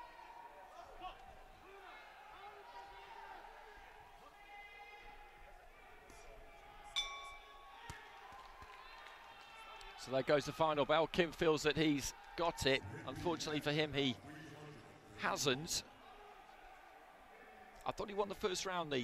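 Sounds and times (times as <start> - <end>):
boxing ring bell strike: 7.0 - 8.0.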